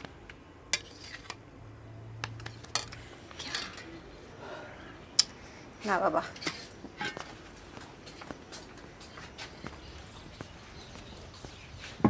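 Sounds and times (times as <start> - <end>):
metal utensils clinking on pots: 2.5 - 4.0, 6.4 - 7.3.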